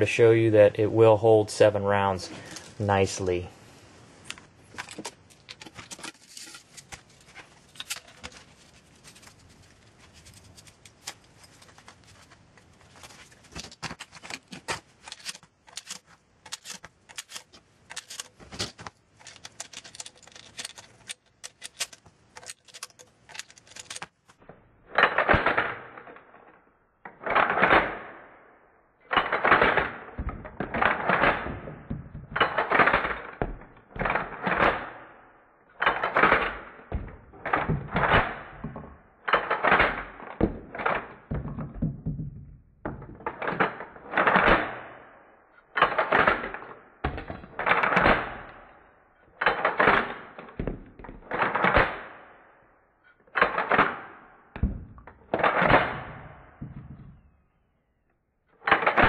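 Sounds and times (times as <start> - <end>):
shotgun shells loading metallic clacks: 14.0 - 24.2.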